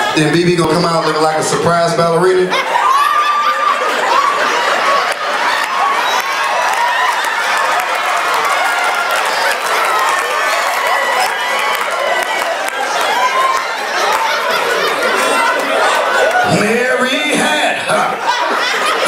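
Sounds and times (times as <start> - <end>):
audience cheering and laughing: 0.0 - 19.0
people clapping: 4.1 - 17.3.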